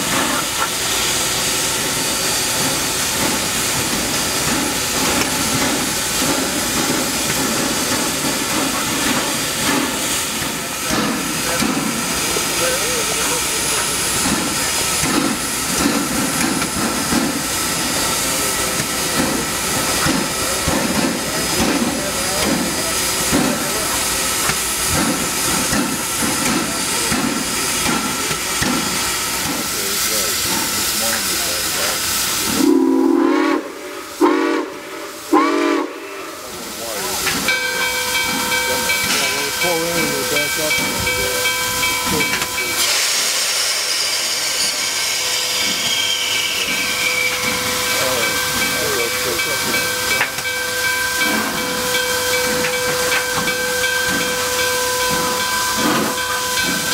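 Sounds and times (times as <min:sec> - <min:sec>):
steam hiss: 0:00.0 - 0:56.9
steam locomotive exhaust chuffs: 0:00.0 - 0:56.9
steam whistle blasts: 0:32.5 - 0:36.4, 0:42.7 - 0:47.9.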